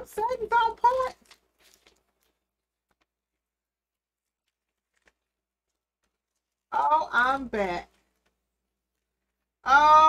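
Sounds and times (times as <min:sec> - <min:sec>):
woman speaking: 0:00.0 - 0:01.2, 0:06.7 - 0:08.0, 0:09.6 - 0:10.0.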